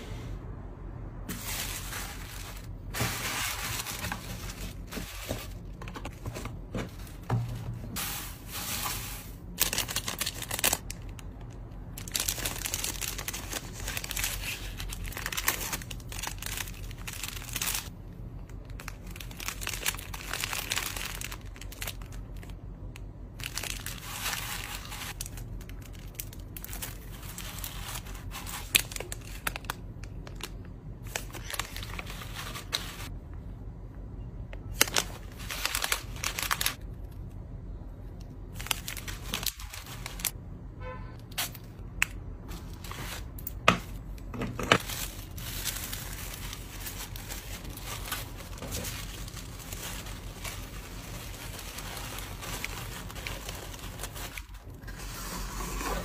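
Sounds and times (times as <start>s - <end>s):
paper shred rustling: 1.3s - 10.9s, 12.0s - 17.9s, 23.4s - 29.7s, 31.0s - 33.1s, 34.8s - 36.8s, 44.8s - 56.0s
plastic packaging crinkling: 1.3s - 33.1s, 34.7s - 37.0s, 38.4s - 40.4s, 42.5s - 54.9s.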